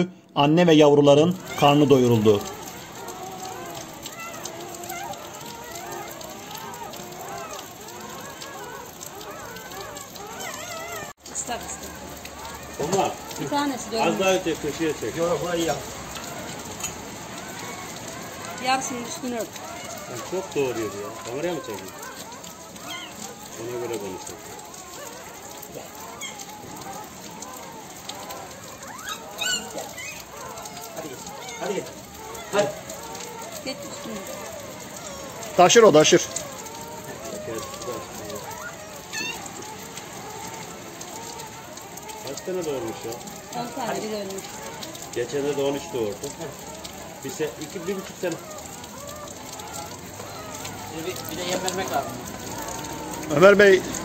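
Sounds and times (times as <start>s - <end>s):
steady rain falling: 0.0s - 54.0s
puppies squealing and whimpering: 0.5s - 54.0s.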